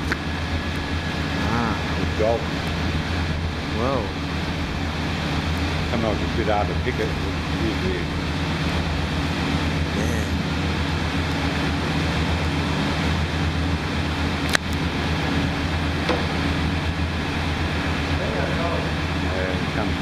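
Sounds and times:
low machinery hum: 0.0s - 20.0s.

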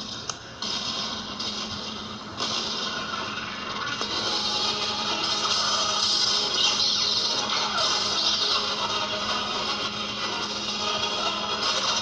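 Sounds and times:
cartoon soundtrack from television: 0.0s - 12.0s.

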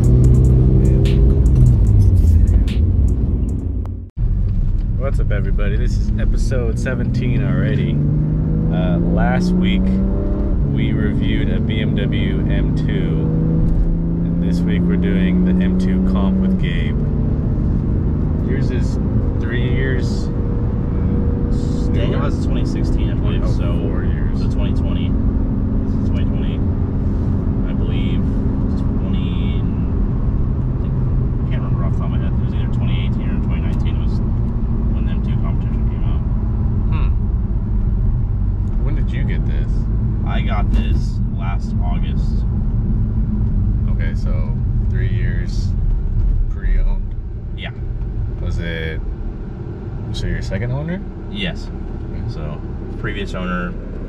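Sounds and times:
car engine cruising: 0.0s - 54.0s
tyre and road noise: 0.0s - 54.0s.

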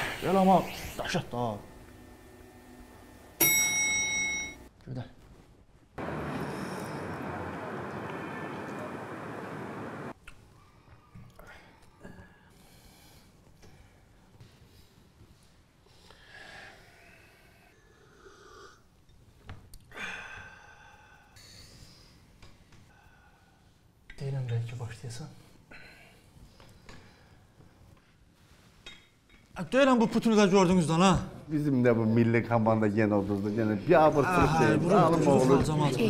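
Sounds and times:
lift arrival chime: 3.4s - 4.7s
man breathing and sipping: 6.2s - 7.2s.

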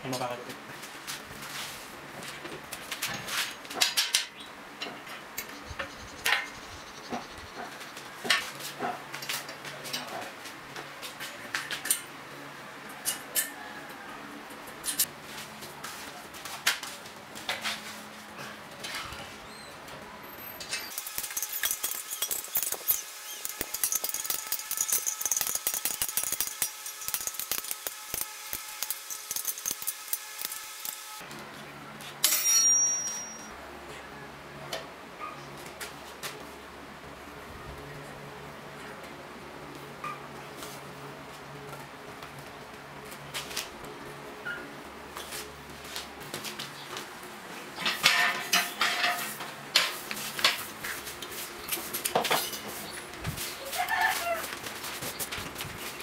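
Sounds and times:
metal clinks and knocks: 20.7s - 28.0s, 32.2s - 33.5s
power tool rattling: 20.9s - 31.2s.

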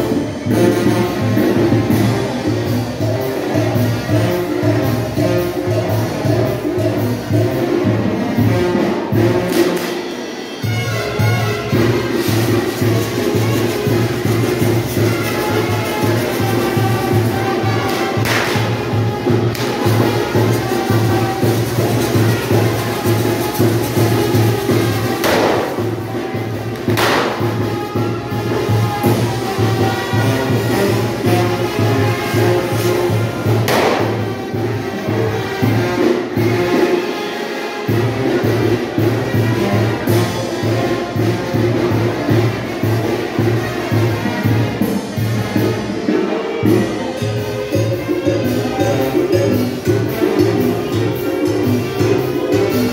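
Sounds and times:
brass band playing dance tune: 0.0s - 52.9s
fireworks bursts: 21.9s - 26.1s.

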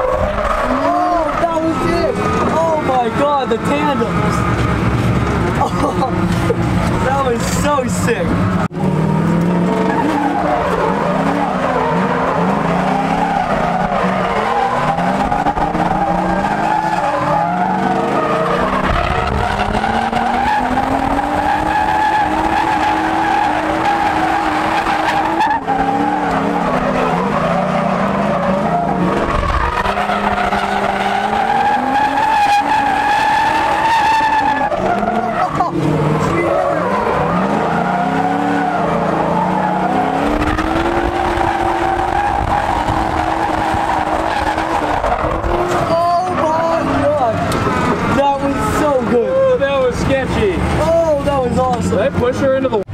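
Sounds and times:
car engines revving: 0.0s - 52.9s
tyres squealing: 9.8s - 51.2s.

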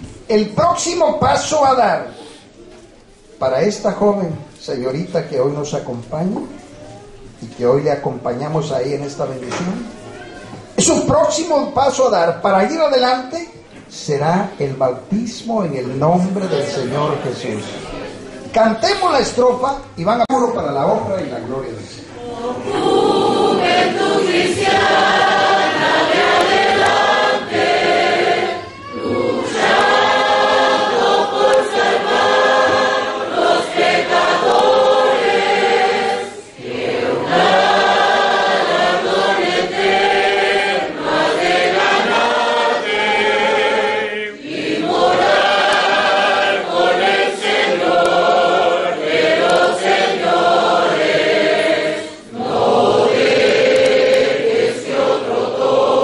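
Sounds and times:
congregation singing a hymn: 14.0s - 19.4s, 20.7s - 56.0s.

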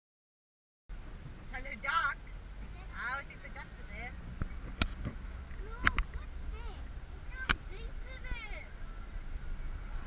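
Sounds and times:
car driving rumble inside cabin: 0.9s - 10.0s.

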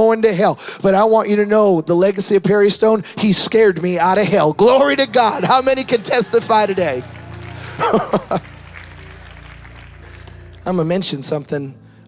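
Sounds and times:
low keyboard pad: 2.5s - 12.0s
man laughing: 7.6s - 8.5s.

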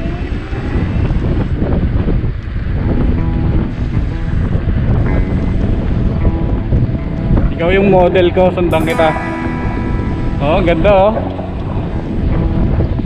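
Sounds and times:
wind buffeting microphone: 0.0s - 13.0s
low rumble: 0.8s - 13.0s.

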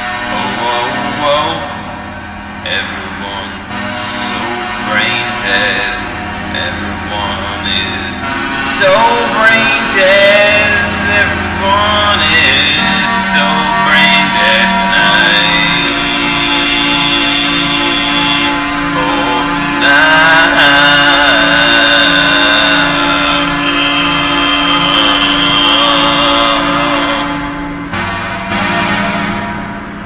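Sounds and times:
held low note: 0.0s - 30.0s
steady pulsing beat: 0.0s - 30.0s
sustained high instrument lines: 0.0s - 30.0s.

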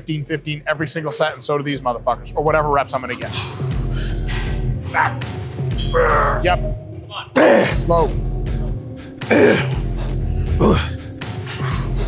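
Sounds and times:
person straining grunt: 7.4s - 7.8s, 9.3s - 9.8s, 10.6s - 11.0s.

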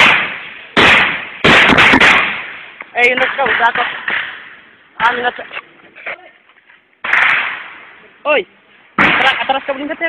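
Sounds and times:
gunshot crack echoing: 0.0s - 5.2s, 7.0s - 8.0s, 9.0s - 9.5s
other gunshots: 0.0s - 5.2s, 7.0s - 7.8s, 9.0s - 9.4s.

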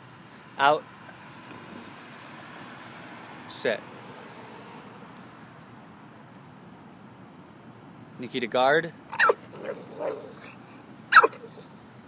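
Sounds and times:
dog barking: 9.2s - 10.5s, 11.1s - 11.5s.

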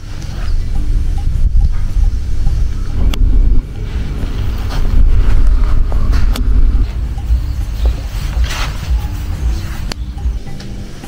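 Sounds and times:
microphone handling noise: 0.0s - 10.0s
wind buffeting microphone: 0.0s - 11.0s.

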